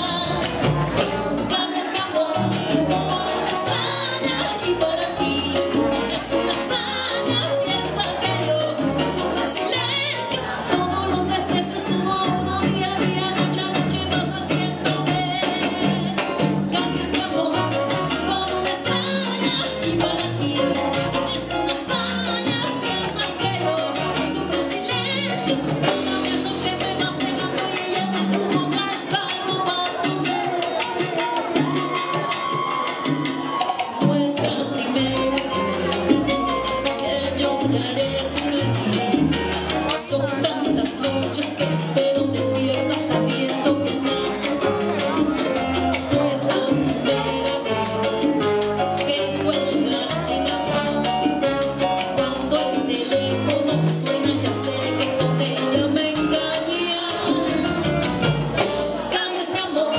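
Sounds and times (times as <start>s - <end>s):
live salsa band playing: 0.0s - 59.9s.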